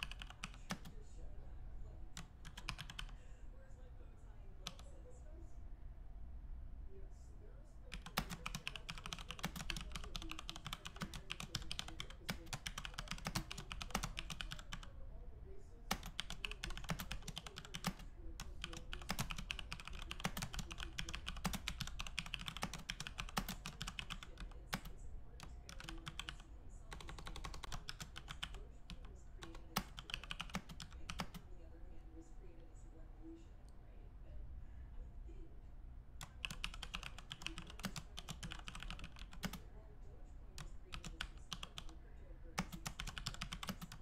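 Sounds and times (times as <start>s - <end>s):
rapid typing on keyboard: 0.0s - 1.0s, 2.2s - 3.2s, 4.6s - 4.8s, 7.9s - 15.0s, 15.9s - 31.5s, 36.2s - 39.7s, 40.6s - 44.0s.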